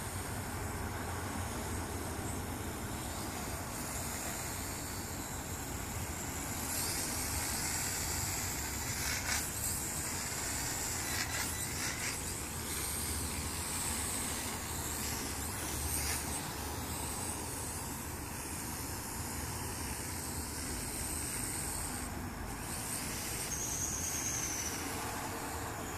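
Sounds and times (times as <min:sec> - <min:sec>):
quadcopter propellers buzzing: 0:00.0 - 0:25.9.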